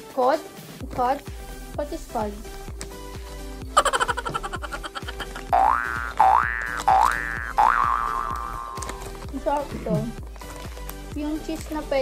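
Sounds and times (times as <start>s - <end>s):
background music: 0.0s - 12.0s
cartoon boing sound effect: 4.3s - 8.9s.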